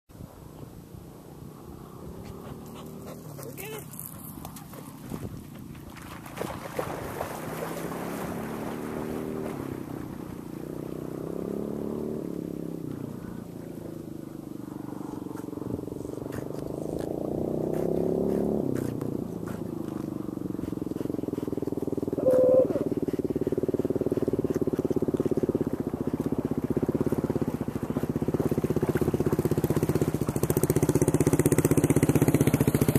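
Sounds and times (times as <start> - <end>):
engine droning: 0.2 - 32.9.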